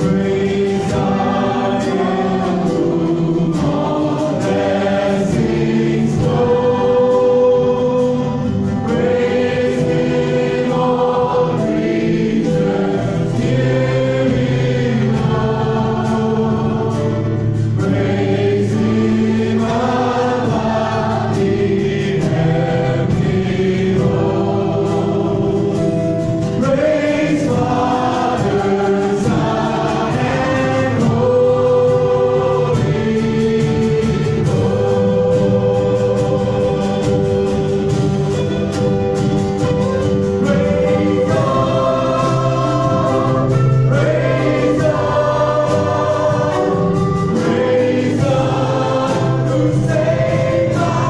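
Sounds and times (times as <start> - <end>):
acoustic and electric guitars: 0.0 - 51.0
drum kit: 0.0 - 51.0
people singing: 0.0 - 51.0.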